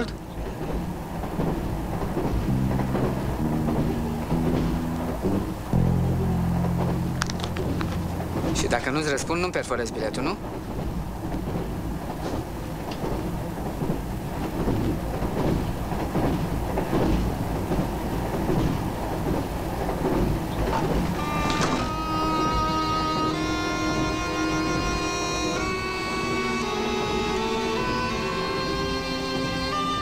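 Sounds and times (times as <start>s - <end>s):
train rumbling and rattling: 0.0s - 30.0s
music with long held notes: 2.3s - 9.6s, 21.2s - 30.0s.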